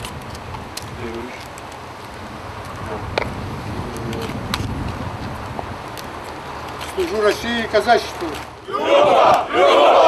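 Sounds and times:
wind buffeting microphone: 0.0s - 7.6s.

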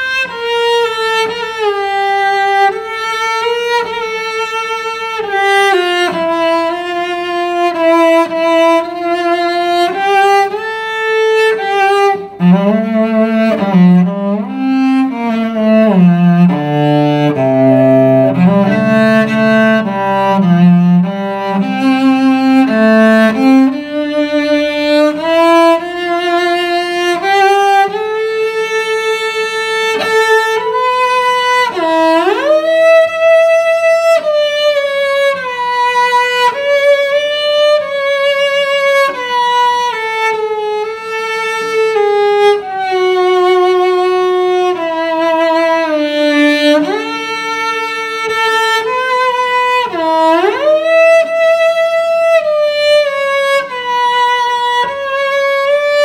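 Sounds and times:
bowed cello melody: 0.0s - 56.0s.

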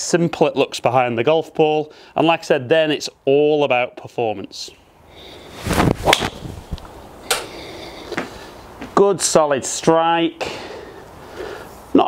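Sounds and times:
golf club swing swish: 5.5s - 7.5s.

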